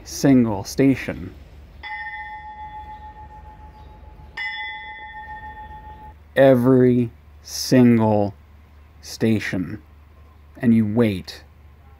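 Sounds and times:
station bell ringing: 0:01.8 - 0:06.2.

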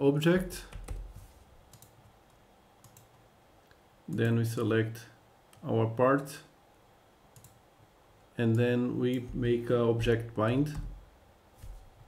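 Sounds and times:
computer mouse clicks: 0:01.7 - 0:03.2, 0:07.3 - 0:07.6.

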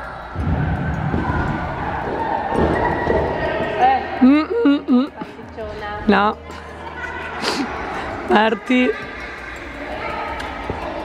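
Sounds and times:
low thumps: 0:00.3 - 0:04.4.

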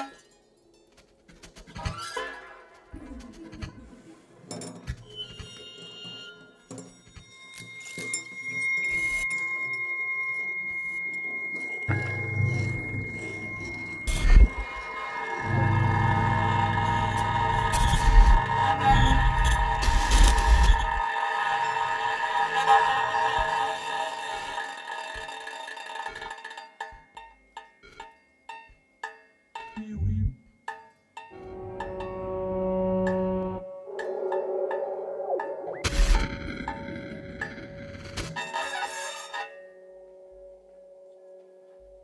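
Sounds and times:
thin high electronic tone: 0:08.8 - 0:21.0, 0:31.4 - 0:37.4
cluster of held tones: 0:31.4 - 0:37.4.

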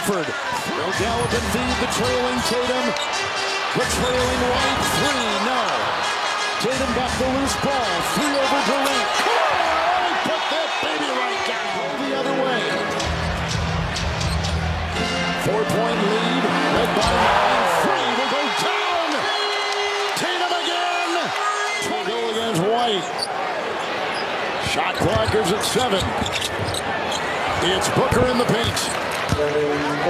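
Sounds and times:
arena crowd noise: 0:00.0 - 0:30.0
sneakers squeaking: 0:23.0 - 0:27.4.

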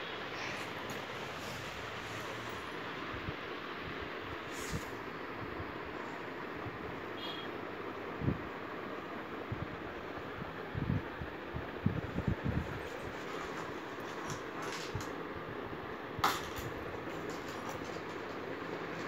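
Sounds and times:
steady background noise: 0:00.0 - 0:19.0.

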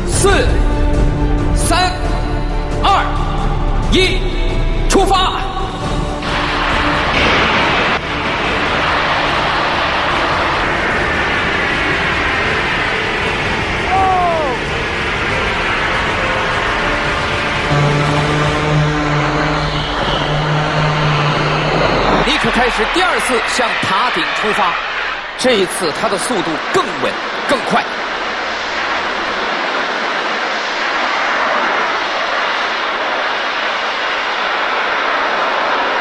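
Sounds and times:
jetpack thrust rushing hiss: 0:06.2 - 0:36.0.

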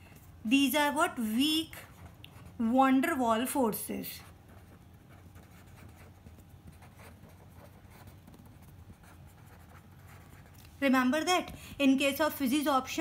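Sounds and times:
low steady hum: 0:00.0 - 0:13.0
pen scratching on paper: 0:01.8 - 0:02.8, 0:04.2 - 0:10.6.

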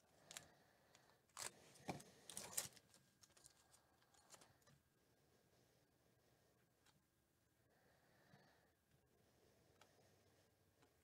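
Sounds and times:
wrapper crackling and tearing: 0:02.3 - 0:03.7.

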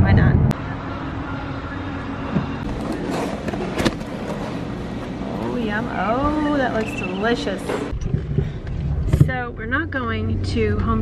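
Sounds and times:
steady car noise: 0:00.0 - 0:11.0.

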